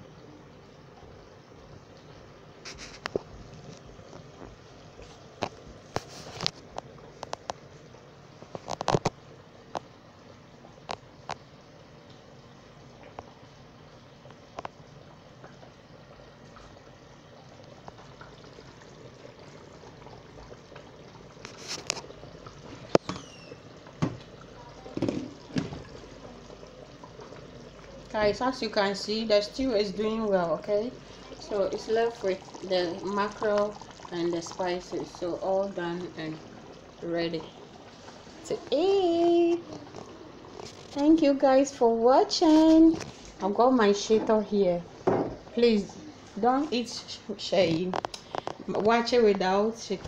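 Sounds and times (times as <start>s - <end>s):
stew simmering with pops: 0.0s - 50.0s.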